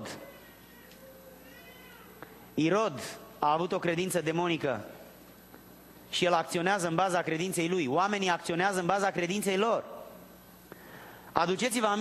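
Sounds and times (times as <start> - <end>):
faint high-pitched cry: 0.0 - 2.6.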